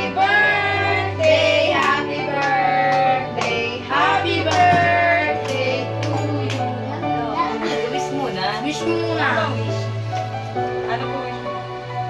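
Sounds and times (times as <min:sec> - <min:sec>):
instrumental backing music: 0:00.0 - 0:12.0.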